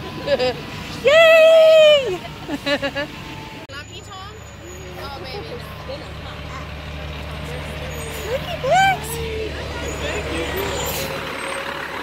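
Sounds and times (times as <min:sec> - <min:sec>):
diesel truck engine running: 0:00.0 - 0:12.0.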